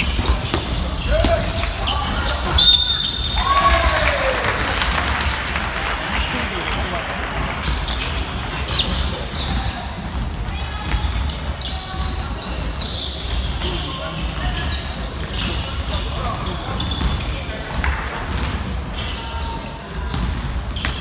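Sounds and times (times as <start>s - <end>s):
players shouting: 1.0s - 7.4s
referee's whistle: 2.2s - 3.8s.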